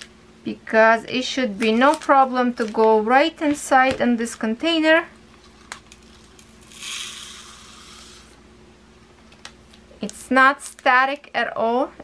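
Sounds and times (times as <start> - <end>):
plastic beads pouring into a jar: 6.6 - 8.4.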